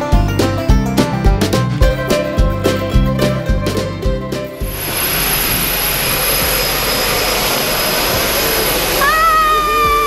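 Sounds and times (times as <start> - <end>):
propeller plane engine running: 4.4 - 10.0
high steady whine: 4.6 - 10.0.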